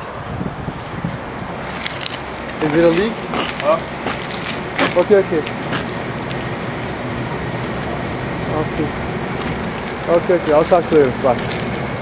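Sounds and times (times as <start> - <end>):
ventilation equipment rushing: 0.5 - 12.0.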